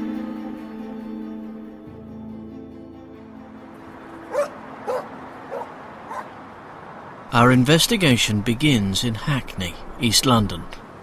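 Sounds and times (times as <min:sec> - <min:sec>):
dog barking: 0:04.3 - 0:06.4.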